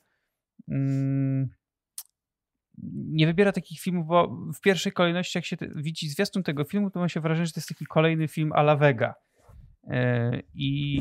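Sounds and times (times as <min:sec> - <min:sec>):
mouth click: 0:02.0 - 0:02.2.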